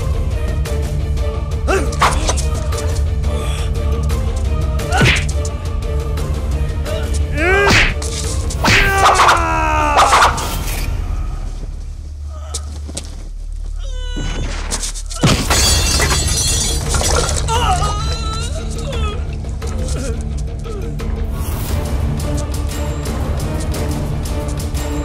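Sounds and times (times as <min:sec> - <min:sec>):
dramatic background score: 0:00.0 - 0:25.0
people crying out: 0:08.7 - 0:10.4, 0:17.2 - 0:21.0
crash with breaking glass: 0:15.2 - 0:17.5.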